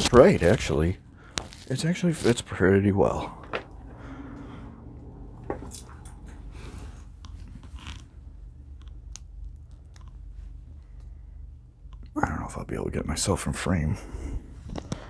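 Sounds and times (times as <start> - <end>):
low steady hum: 0.0 - 15.0
soft clicks and scrapes: 5.4 - 8.1.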